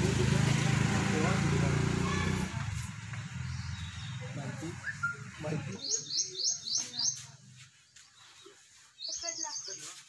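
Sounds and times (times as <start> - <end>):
small bird chirping: 3.4 - 10.0.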